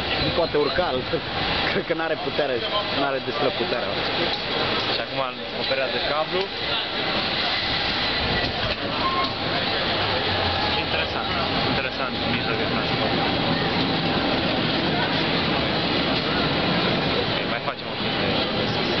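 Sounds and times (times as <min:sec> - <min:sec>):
cable car moving on track: 0:00.0 - 0:19.0
people talking: 0:00.0 - 0:19.0
street din: 0:00.0 - 0:19.0.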